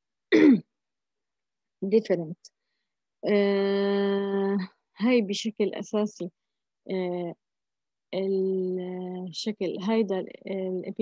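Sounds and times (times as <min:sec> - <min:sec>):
person clearing throat: 0:00.3 - 0:00.7.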